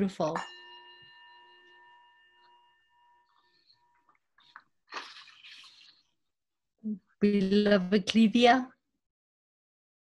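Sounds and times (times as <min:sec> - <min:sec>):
bell ringing: 0:00.0 - 0:04.6.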